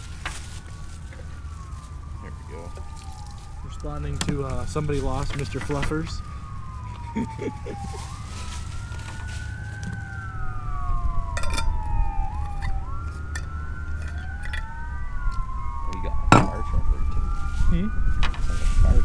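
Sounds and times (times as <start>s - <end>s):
emergency vehicle sirens wailing: 0.0s - 19.0s
steady low rumble: 10.2s - 19.0s.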